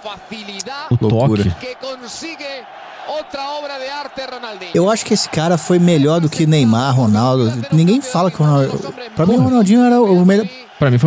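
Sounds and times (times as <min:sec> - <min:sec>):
man commentating: 0:00.0 - 0:02.3, 0:03.3 - 0:11.0.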